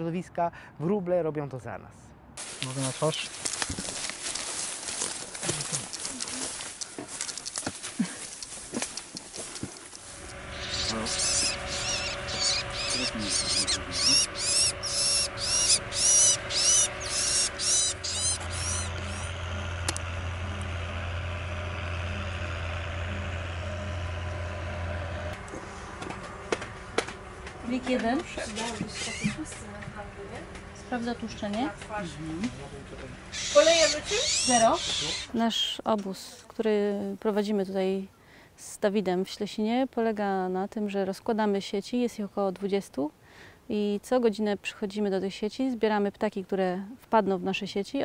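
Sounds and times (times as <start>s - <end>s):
footsteps through dry grass: 2.4s - 14.4s
steady low hum: 4.1s - 35.7s
small bird chirping: 10.5s - 19.4s, 33.3s - 35.4s.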